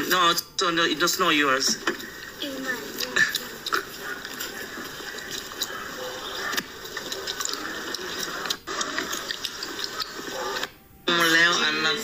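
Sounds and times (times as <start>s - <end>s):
muffled room noise: 0.0s - 12.0s
faint background voices: 1.7s - 12.0s.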